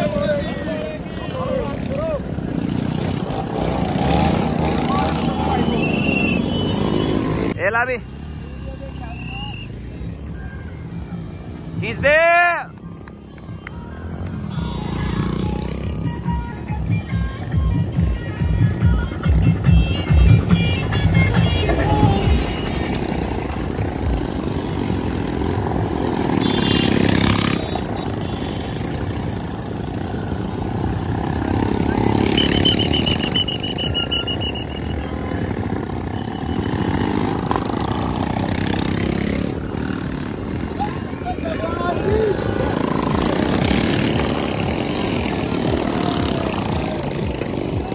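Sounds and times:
motorcycles passing: 0.0s - 47.9s
voices: 0.0s - 47.9s.

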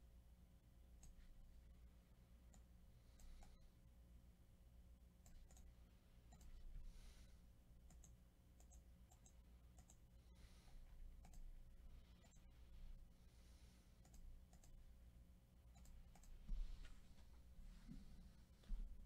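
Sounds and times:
low steady hum: 0.0s - 19.0s
computer mouse clicks: 1.0s - 1.2s, 2.5s - 3.6s, 5.2s - 6.6s, 7.8s - 10.0s, 11.2s - 11.5s, 12.2s - 12.5s, 14.0s - 14.8s, 15.7s - 16.4s.

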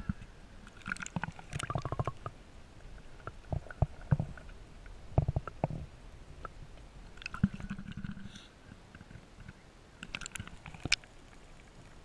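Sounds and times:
muffled underwater knocks and clicks: 0.0s - 2.4s, 3.1s - 6.6s, 7.2s - 11.2s.

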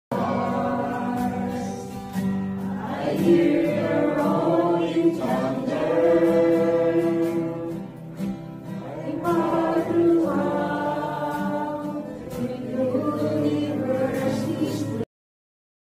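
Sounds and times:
acoustic guitar strumming: 0.1s - 15.0s
group singing worship song: 0.1s - 15.1s.

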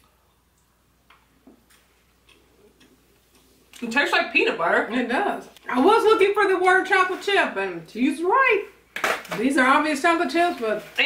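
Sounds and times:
people chewing quietly: 0.0s - 3.8s.

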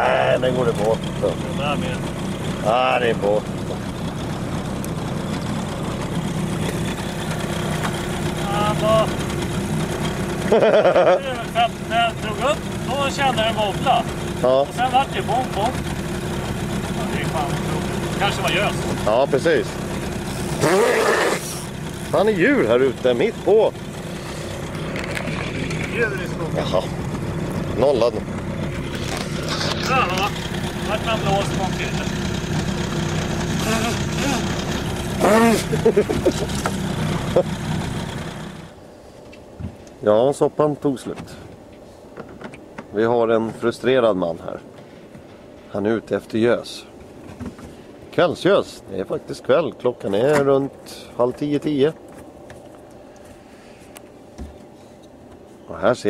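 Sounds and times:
voices: 0.0s - 4.1s, 6.7s - 37.6s, 55.7s - 56.0s
outboard motor running: 0.0s - 56.0s.

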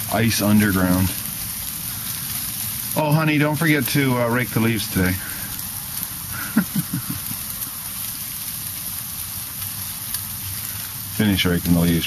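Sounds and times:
ice pellets pattering on ground: 0.0s - 12.0s.

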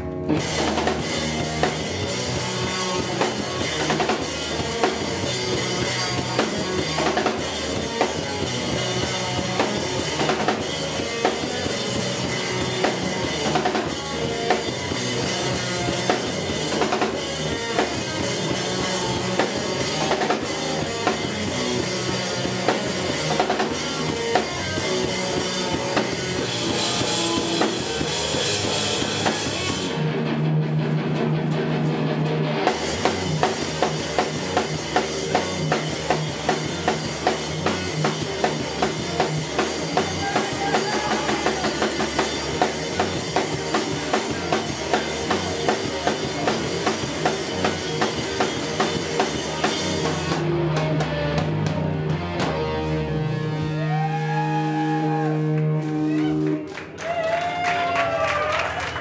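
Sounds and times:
drum kit beat: 0.0s - 53.0s
rock band playing: 0.0s - 59.0s.

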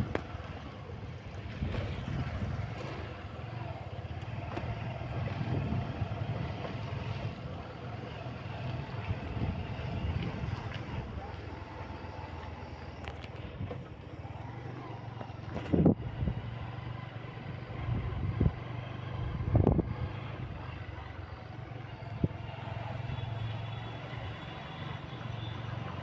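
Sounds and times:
engine running at low revs: 0.0s - 26.0s.

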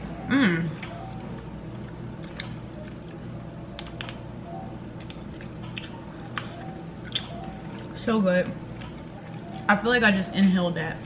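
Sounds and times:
steady low hum: 0.0s - 11.0s
mouth clicks chewing: 5.0s - 7.8s.

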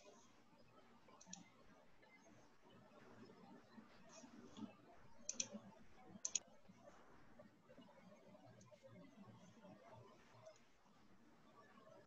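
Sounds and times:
computer mouse double-clicks: 5.3s - 5.5s.

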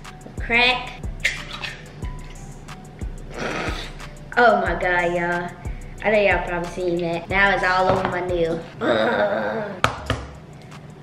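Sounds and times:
background music: 0.0s - 11.0s
egg cracking: 1.2s - 2.4s.

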